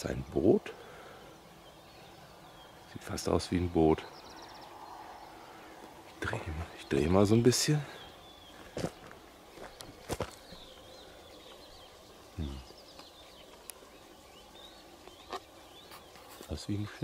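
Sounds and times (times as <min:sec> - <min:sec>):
faint bird chirps: 0:00.0 - 0:17.0.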